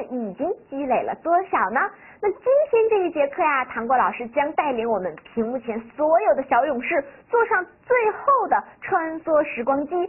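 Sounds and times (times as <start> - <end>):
woman speaking lively: 0.0 - 10.0.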